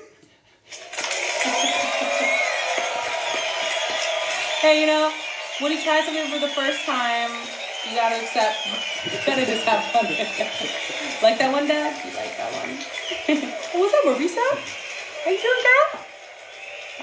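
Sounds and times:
canned applause and cheering: 0.7 - 17.0
people laughing and talking: 7.9 - 15.9.

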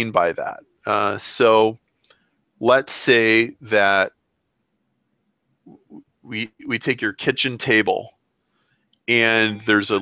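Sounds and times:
man speaking into headset microphone: 0.0 - 1.8, 2.6 - 4.1, 5.7 - 8.1, 9.1 - 10.0.

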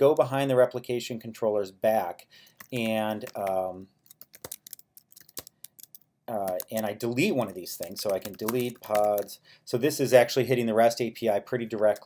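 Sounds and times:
computer keyboard typing: 2.5 - 9.4.

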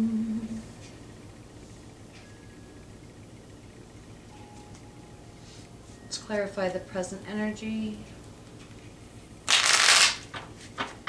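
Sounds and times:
cards being shuffled: 9.5 - 11.0.

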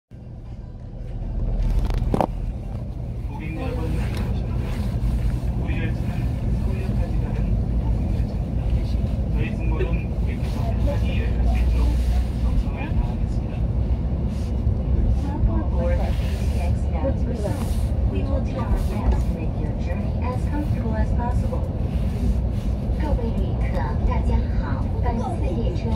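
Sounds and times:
train cabin rumble: 0.1 - 25.9
passengers talking: 0.2 - 25.9.

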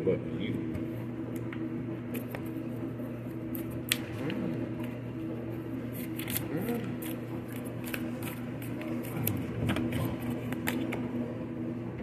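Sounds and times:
low background hum: 0.0 - 12.0
cards being shuffled: 5.8 - 11.2.

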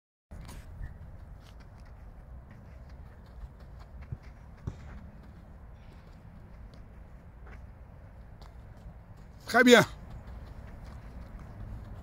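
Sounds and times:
faint footfalls on ground: 0.3 - 12.0.

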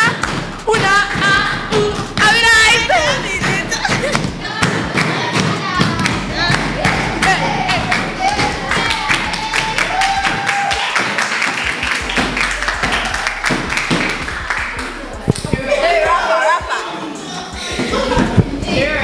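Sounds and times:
girls clapping and thumping beat: 0.0 - 16.0
voices singing and shouting: 0.0 - 19.0.

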